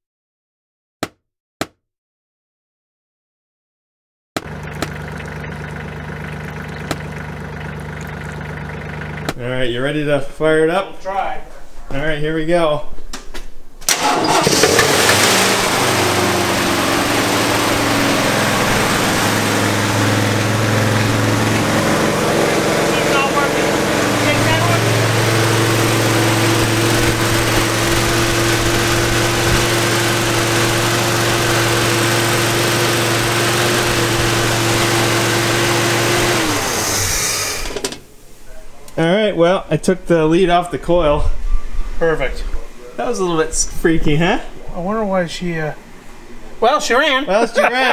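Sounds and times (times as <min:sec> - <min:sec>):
engine dying with falling pitch: 0:04.4 - 0:09.4, 0:13.9 - 0:37.8
engine fan noise: 0:04.4 - 0:09.4, 0:13.9 - 0:38.0
engine starting and running: 0:04.4 - 0:09.4, 0:13.9 - 0:38.1.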